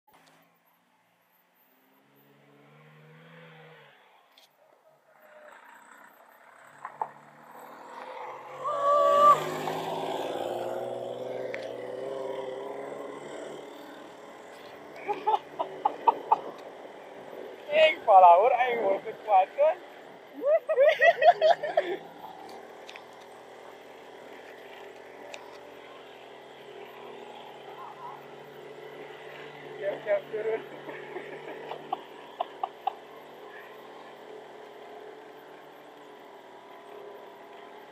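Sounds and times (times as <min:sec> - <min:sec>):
van engine approaching: 0:01.8 - 0:37.9.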